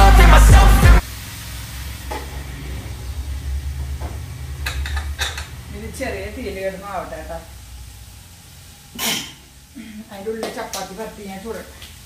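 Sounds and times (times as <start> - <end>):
vegetables frying: 1.0 - 12.0.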